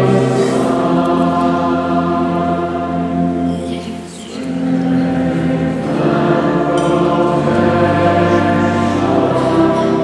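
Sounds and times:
church choir singing a hymn: 0:00.0 - 0:10.0.

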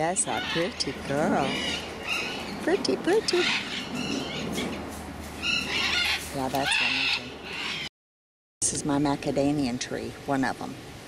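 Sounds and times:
macaw squawking: 0:00.0 - 0:02.6, 0:03.2 - 0:04.8, 0:05.4 - 0:07.9.

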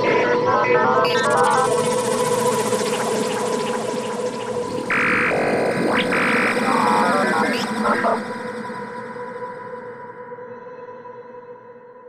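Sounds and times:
glitchy electronic effects: 0:00.0 - 0:08.5
loud buzzy synth tones: 0:00.0 - 0:08.7
steady synth drone: 0:00.0 - 0:10.3.

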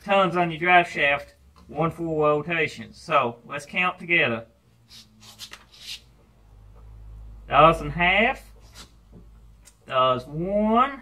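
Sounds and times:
hand rubbing and scraping metal: 0:04.8 - 0:06.3, 0:08.5 - 0:09.1.

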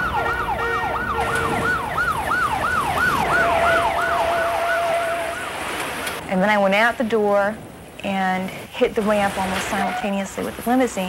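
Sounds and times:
siren yelping: 0:00.0 - 0:05.8
steady siren tone: 0:00.0 - 0:05.8.

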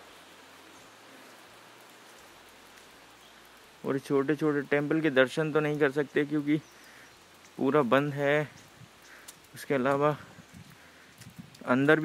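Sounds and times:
light rain on grass and foliage: 0:00.0 - 0:12.0.

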